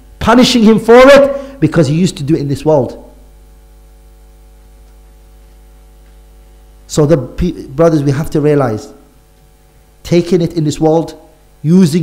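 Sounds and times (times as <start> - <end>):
electrical mains hum: 0.0 - 12.0
man speaking: 0.2 - 3.2, 6.9 - 9.0, 10.1 - 12.0.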